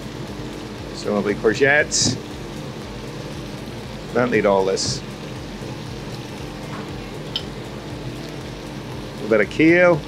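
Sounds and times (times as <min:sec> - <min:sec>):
extraction hood humming: 0:00.0 - 0:10.0
fish and vegetables sizzling in pan: 0:00.0 - 0:10.0.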